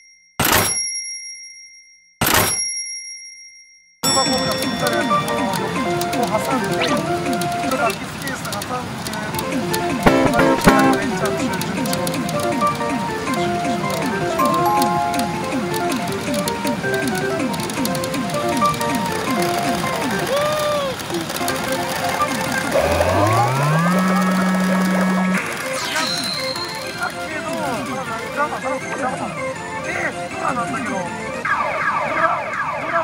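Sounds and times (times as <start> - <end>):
electronic game music: 4.8 - 7.9, 9.7 - 20.2, 22.6 - 28.2
falling blips: 10.0 - 11.6, 13.4 - 16.6, 22.1 - 28.0
short high beep: 10.1 - 11.1, 25.8 - 27.0.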